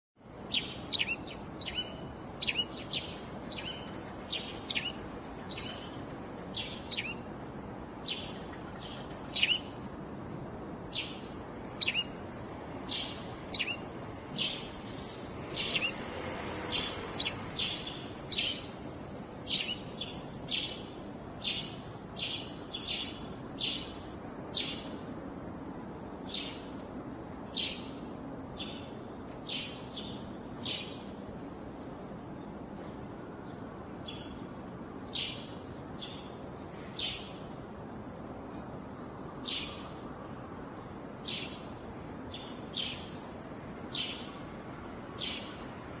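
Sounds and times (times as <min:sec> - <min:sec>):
low background noise: 0:00.2 - 0:46.0
bird chirping: 0:00.4 - 0:07.3, 0:08.0 - 0:09.8, 0:10.9 - 0:12.2, 0:12.8 - 0:18.8, 0:19.4 - 0:25.0, 0:39.4 - 0:40.0, 0:41.2 - 0:41.7, 0:42.3 - 0:43.2, 0:43.9 - 0:44.4, 0:45.2 - 0:45.6.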